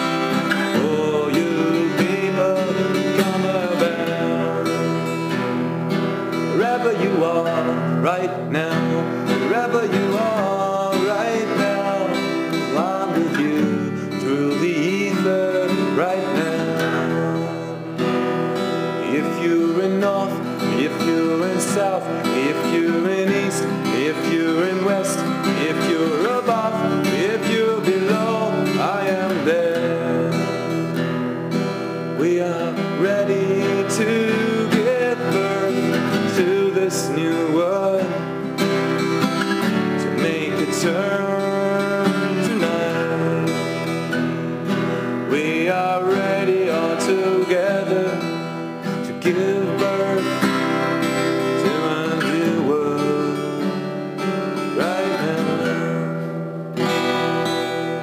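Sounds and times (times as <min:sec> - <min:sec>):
acoustic guitar: 0:00.0 - 0:58.0
person singing: 0:00.0 - 0:58.0.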